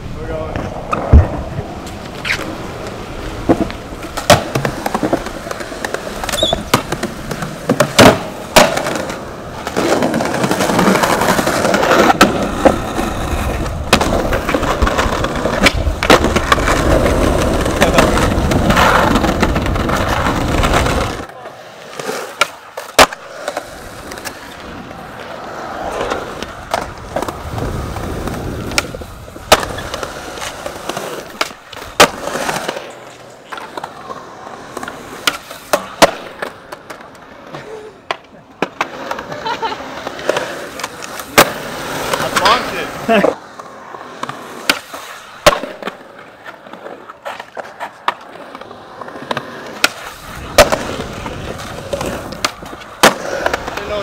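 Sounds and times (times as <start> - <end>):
skateboard wheels rolling on concrete: 0.0 - 54.0
skateboard clacks: 0.4 - 54.0.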